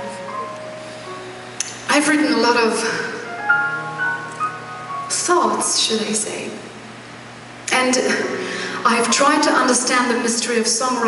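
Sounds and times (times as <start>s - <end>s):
soft instrumental melody: 0.0s - 5.6s.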